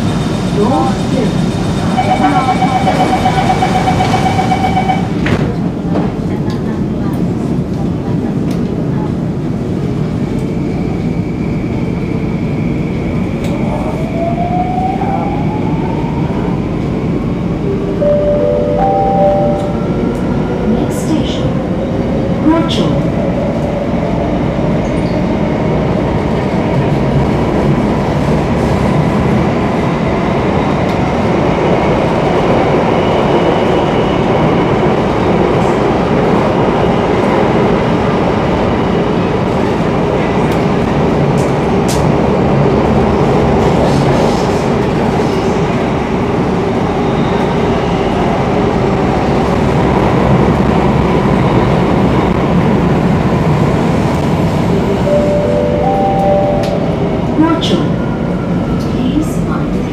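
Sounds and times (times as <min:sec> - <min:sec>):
train wheels rumbling on rails: 0:00.0 - 0:18.0, 0:19.3 - 0:59.9.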